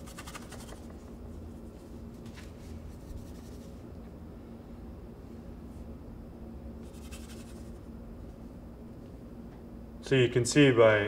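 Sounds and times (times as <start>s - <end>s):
paintbrush scratching on panel: 0.0s - 1.1s
low steady hum: 0.0s - 11.0s.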